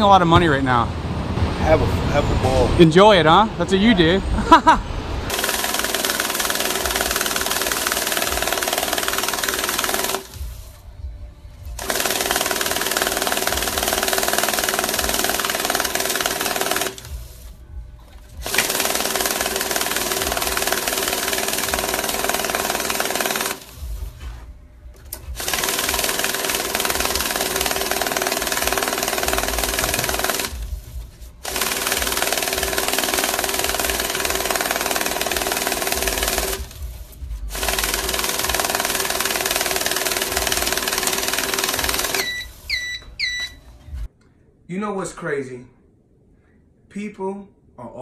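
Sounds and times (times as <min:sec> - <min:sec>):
banknote counting machine riffling: 0:05.3 - 0:10.8, 0:11.7 - 0:17.6, 0:18.2 - 0:24.1, 0:25.2 - 0:43.6.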